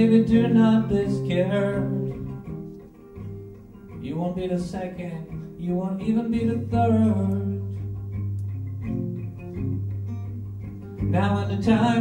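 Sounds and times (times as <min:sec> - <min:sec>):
plucked guitar notes: 0:00.0 - 0:12.0.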